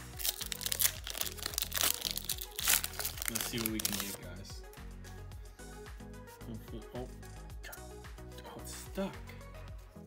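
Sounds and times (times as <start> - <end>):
foil wrapper tearing and crinkling: 0.0 - 4.2
background music: 0.0 - 10.0.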